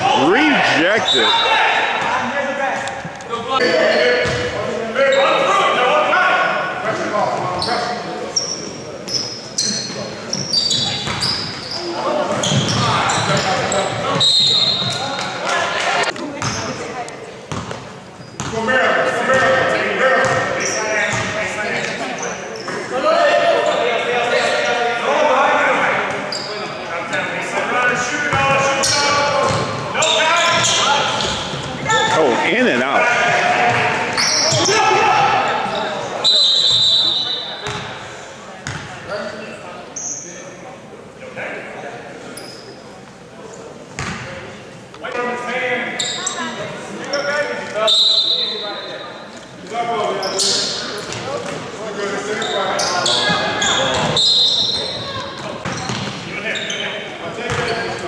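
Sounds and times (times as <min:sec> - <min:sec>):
voices calling and talking: 0:00.0 - 0:58.0.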